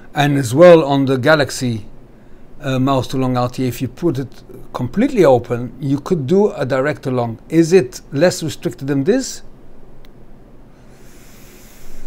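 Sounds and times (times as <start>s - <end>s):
air hissing through vape atomiser: 10.8s - 12.0s.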